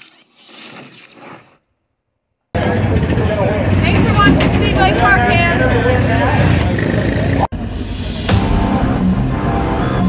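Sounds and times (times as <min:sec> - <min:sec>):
race car engines rumbling: 0:02.6 - 0:10.0
woman talking: 0:03.8 - 0:05.6.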